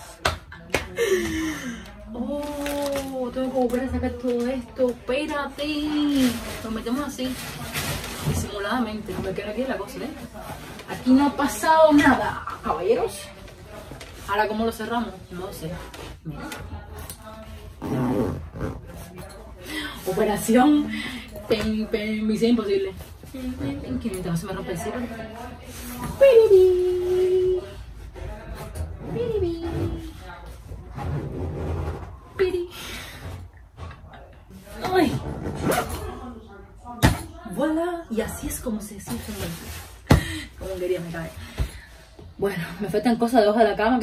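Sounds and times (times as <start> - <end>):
bag handling noises: 2.2 - 3.8
fabric bag rustling: 5.9 - 11.6.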